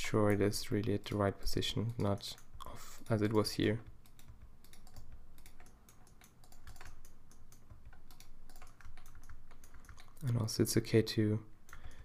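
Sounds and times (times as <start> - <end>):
computer keyboard keys clicking: 0.0 - 10.6, 11.6 - 12.0.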